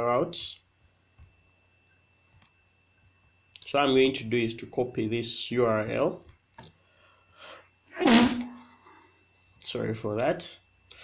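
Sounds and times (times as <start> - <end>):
man sneezing: 8.0 - 8.6.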